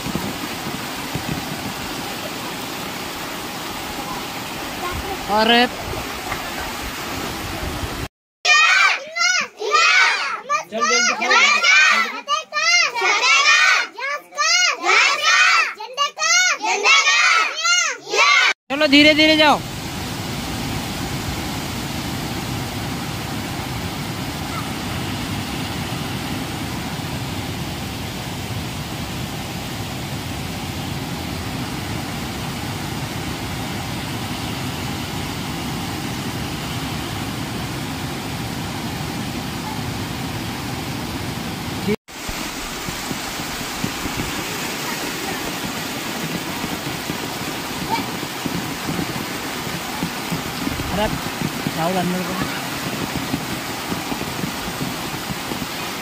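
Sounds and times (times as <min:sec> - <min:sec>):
water rushing over rocks: 0:00.0 - 0:08.1, 0:18.7 - 0:56.0.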